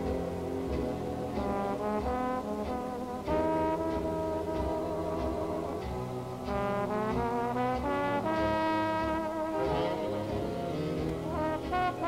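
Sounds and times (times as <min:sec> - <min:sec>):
big band dance music: 0:00.0 - 0:12.0.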